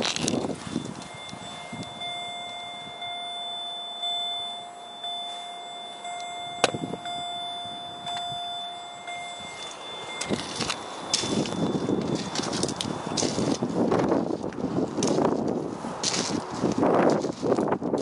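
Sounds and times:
dashboard warning chime: 0.4s - 14.3s.

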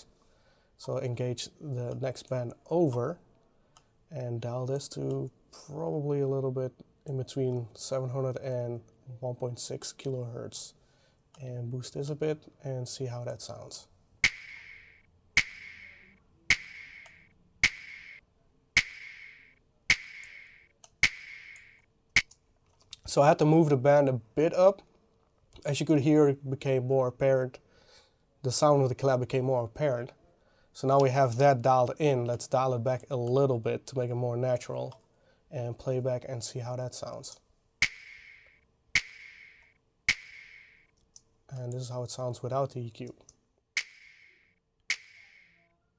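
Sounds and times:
looped hand clap sample: 14.2s - 18.2s, 18.8s - 22.3s, 37.8s - 40.8s, 43.8s - 45.5s.

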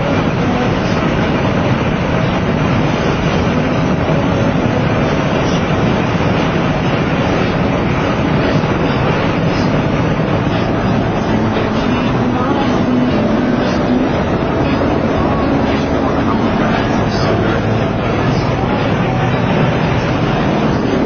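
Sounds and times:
car road and wind noise: 0.0s - 21.0s.

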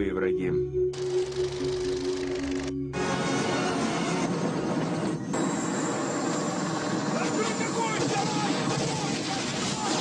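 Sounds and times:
helicopter running: 0.9s - 10.0s.

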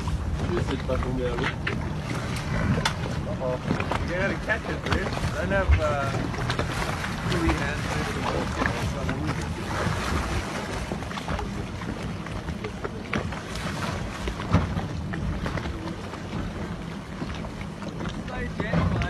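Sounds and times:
boat engine humming: 0.0s - 19.0s
water splashing against hull: 0.0s - 19.0s
wind buffeting microphone: 0.0s - 19.0s.

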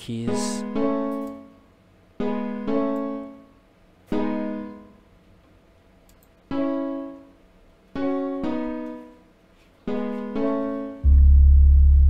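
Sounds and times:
piano chords: 0.1s - 1.6s, 2.2s - 5.0s, 8.0s - 9.2s, 9.9s - 12.0s.

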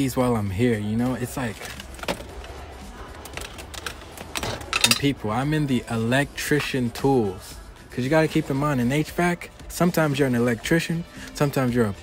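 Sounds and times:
plastic package clicking and rattling: 1.3s - 5.1s.

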